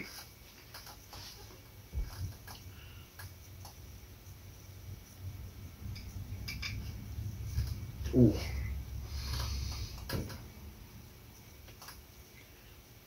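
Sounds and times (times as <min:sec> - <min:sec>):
low room rumble: 0:00.0 - 0:13.0.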